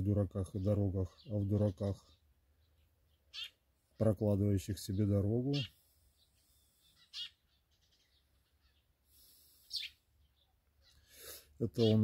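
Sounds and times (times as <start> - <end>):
high bird chirps: 0.0 - 4.1, 4.8 - 12.0.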